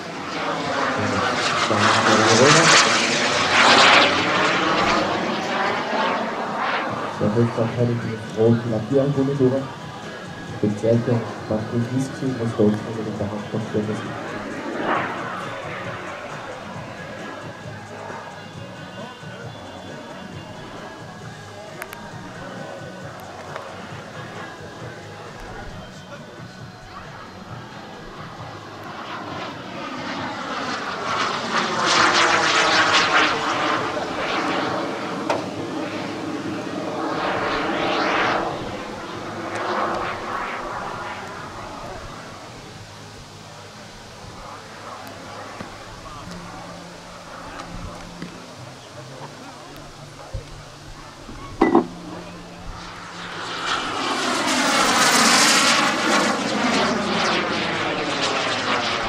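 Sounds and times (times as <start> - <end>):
model jet turbine whine: 0.0 - 59.0.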